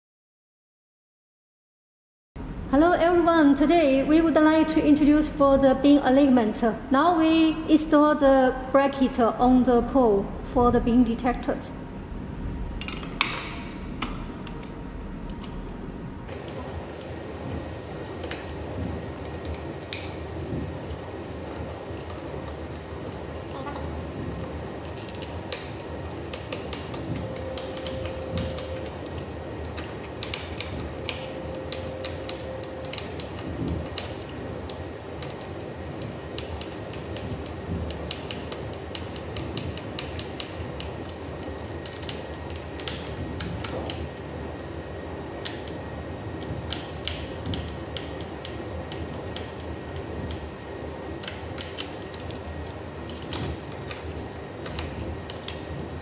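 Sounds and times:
steady background noise: 0:02.4 - 0:56.0.

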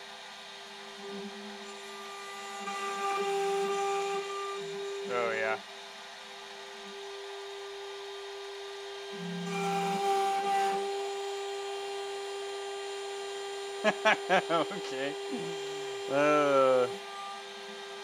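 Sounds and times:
end mill cutting plywood: 0:00.0 - 0:18.0
router spindle whining: 0:00.0 - 0:18.0.

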